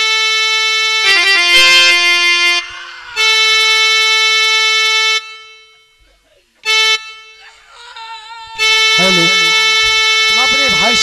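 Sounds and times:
harmonium held notes: 0.0s - 11.0s.

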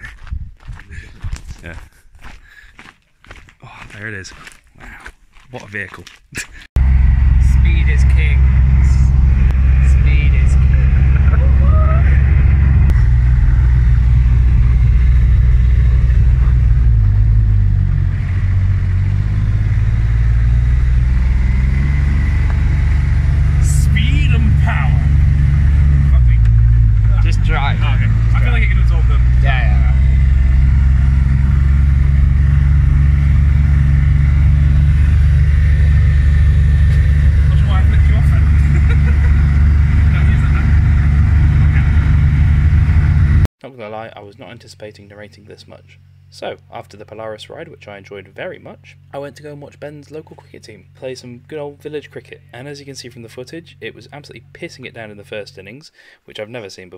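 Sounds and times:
buggy engine running: 6.8s - 43.5s
voices: 7.4s - 13.1s, 15.6s - 17.0s, 23.2s - 30.2s, 36.9s - 42.2s, 43.7s - 56.9s.

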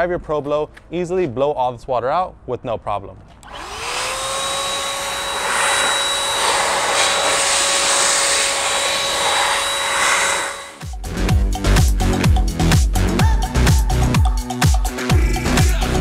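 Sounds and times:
electric blower motor whining: 3.4s - 11.0s
rush of air: 5.1s - 10.8s.

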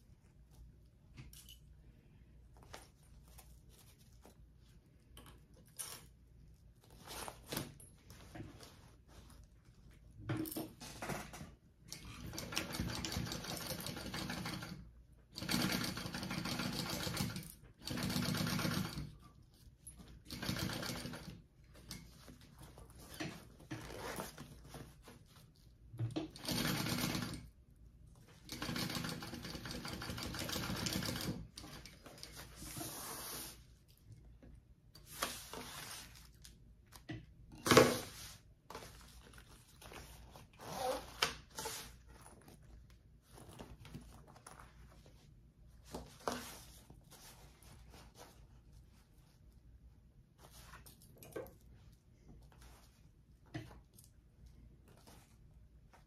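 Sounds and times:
sewing machine stitching: 12.0s - 19.1s, 20.2s - 21.4s, 26.3s - 27.5s, 28.3s - 32.0s.

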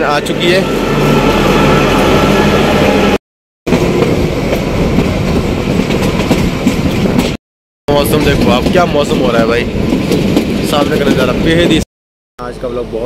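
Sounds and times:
diesel locomotive engine: 0.0s - 11.8s
train wheels clattering on track: 3.7s - 7.4s, 8.0s - 11.8s.

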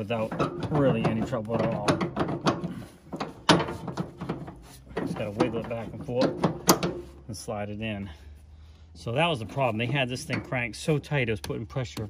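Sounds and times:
metal hitch link clanking: 0.0s - 7.4s, 9.1s - 11.3s.

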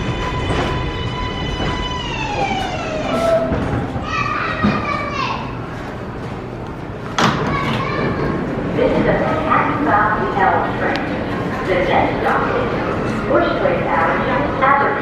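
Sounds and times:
subway train motor whine: 0.0s - 4.4s
voices on platform: 1.3s - 15.0s.

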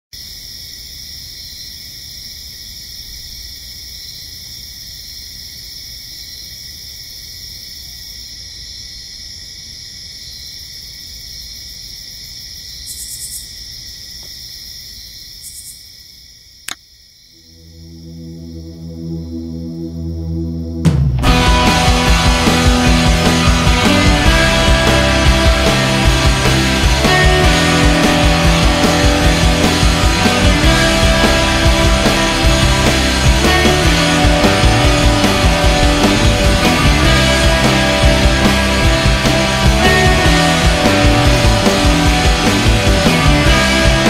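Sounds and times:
crickets chirping: 0.1s - 21.0s
sustained low chord: 17.4s - 44.0s
low rumble: 17.5s - 43.9s.

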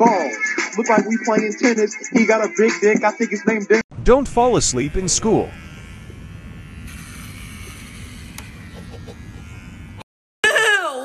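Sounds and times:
electric hair clippers buzzing: 4.1s - 10.1s.

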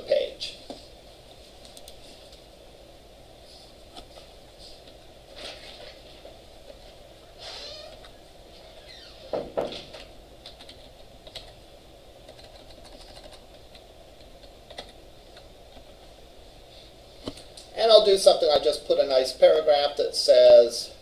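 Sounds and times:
computer keyboard typing: 10.4s - 11.6s, 12.2s - 15.0s.

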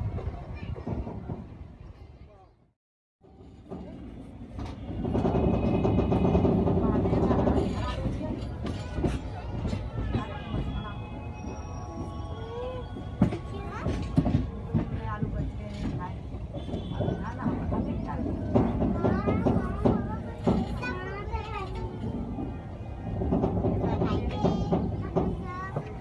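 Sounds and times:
moving passenger train: 0.0s - 26.0s
wheels clacking over rail joints: 3.2s - 26.0s.

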